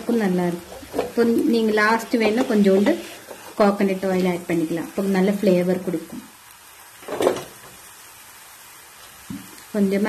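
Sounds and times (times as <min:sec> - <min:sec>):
person speaking: 0:00.0 - 0:06.3.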